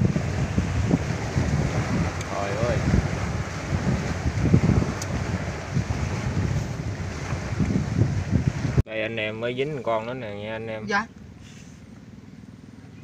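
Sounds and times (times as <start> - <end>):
choppy river rushing: 0.0 - 8.8
wind buffeting microphone: 0.0 - 8.9
man's voice: 8.9 - 11.0.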